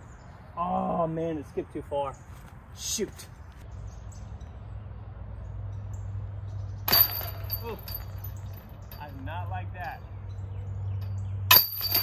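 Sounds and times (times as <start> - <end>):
disc striking metal chains: 6.9 - 10.0, 11.0 - 12.0
high metallic ringing: 6.9 - 12.0.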